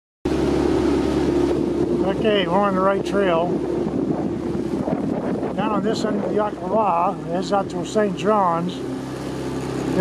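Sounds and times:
motorboat engine running: 0:00.3 - 0:10.0
wind on microphone: 0:00.3 - 0:10.0.

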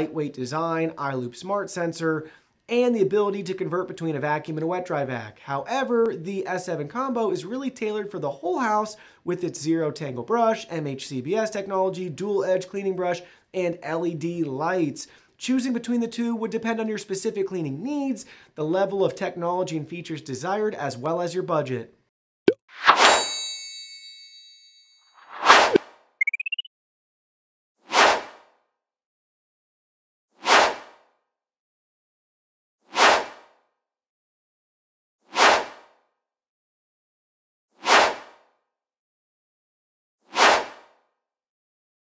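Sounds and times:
bright metallic ring: 0:23.0 - 0:25.2.

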